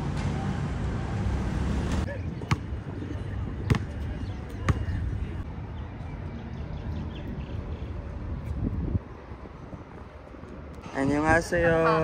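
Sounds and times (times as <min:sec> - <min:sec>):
basketball bouncing on court: 0:03.6 - 0:04.0, 0:04.6 - 0:05.0.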